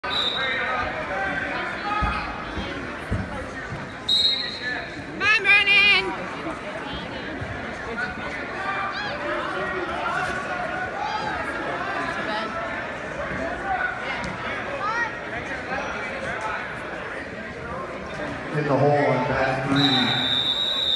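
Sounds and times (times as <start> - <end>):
crowd talking and calling out: 0.0 - 20.9.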